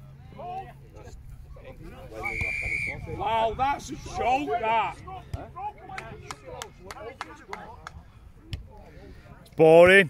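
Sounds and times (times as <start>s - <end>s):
men's voices: 0.3s - 10.0s
referee's whistle blast: 2.2s - 3.0s.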